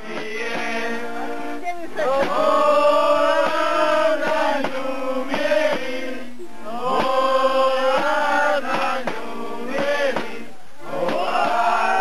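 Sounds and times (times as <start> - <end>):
men singing together: 0.0 - 1.4, 2.0 - 12.0
sharp knocks: 7.9 - 10.4.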